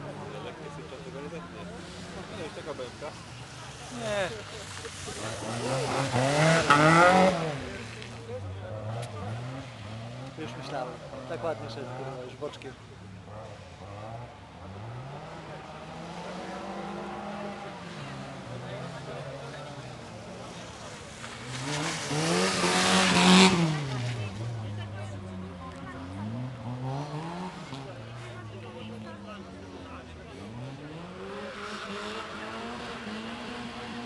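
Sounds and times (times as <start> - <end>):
rally car accelerating past: 4.9 - 8.0, 13.3 - 28.3, 29.2 - 34.0.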